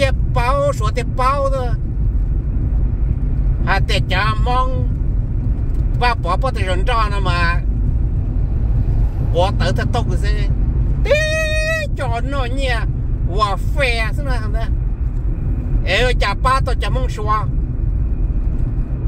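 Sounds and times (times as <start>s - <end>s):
man talking: 0.0s - 1.8s, 3.7s - 4.9s, 6.0s - 7.6s, 9.3s - 14.7s, 15.8s - 17.5s
car road and engine rumble: 0.0s - 19.0s.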